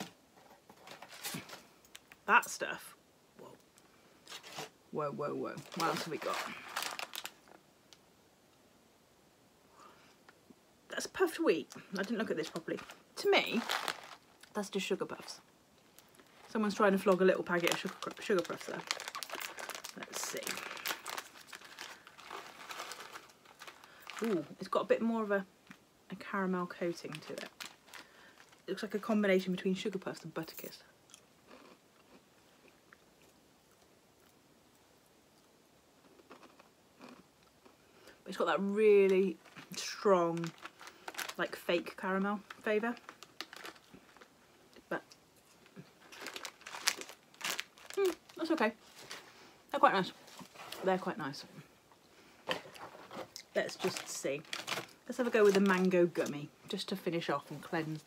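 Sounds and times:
snack packet being handled: 5.6 - 7.6, 12.0 - 14.5, 16.0 - 24.4, 42.5 - 44.3, 45.6 - 49.2, 52.5 - 55.9
chewing crunchy snack: 31.1 - 34.4, 36.0 - 37.8.

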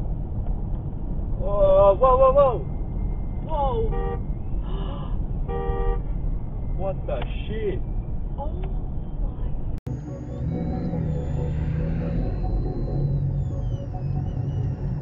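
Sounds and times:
car road and engine rumble: 0.0 - 15.0.

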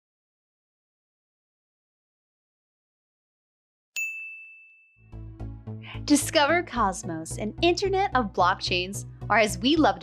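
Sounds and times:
bright chime ding: 4.0 - 5.0.

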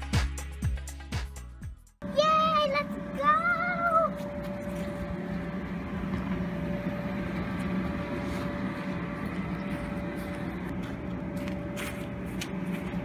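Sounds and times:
blower humming: 2.0 - 13.0
high-pitched wavering cry: 2.2 - 4.8.

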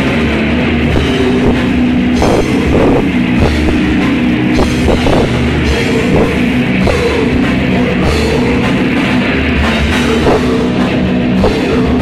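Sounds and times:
distorted electric guitars: 0.0 - 12.0
pounding drum kit: 0.0 - 12.0.

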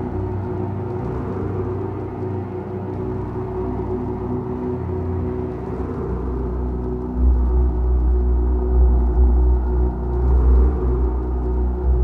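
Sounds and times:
sustained synthesizer chords: 0.0 - 12.0.

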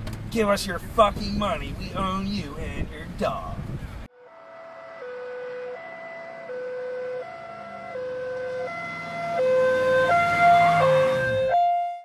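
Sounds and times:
two-tone emergency siren: 4.1 - 12.0.

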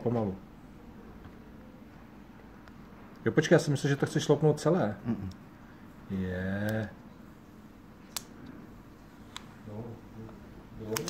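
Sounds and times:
plastic film peeling: 10.8 - 11.0.

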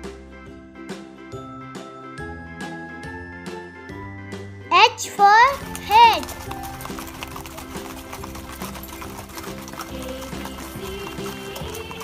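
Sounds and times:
background music: 0.0 - 12.0
horse hooves clip-clopping: 5.1 - 12.0.

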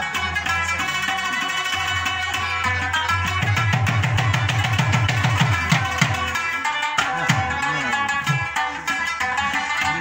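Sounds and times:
harmonium tones: 0.0 - 10.0
plucked lute: 0.0 - 10.0
tabla drumming: 0.0 - 10.0.

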